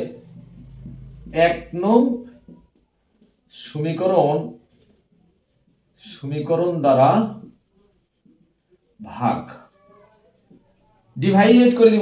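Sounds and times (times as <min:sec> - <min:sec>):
marker writing on whiteboard: 0:00.0 - 0:12.0
man speaking: 0:01.3 - 0:02.3, 0:03.5 - 0:04.6, 0:06.0 - 0:07.5, 0:09.0 - 0:09.7, 0:11.2 - 0:12.0.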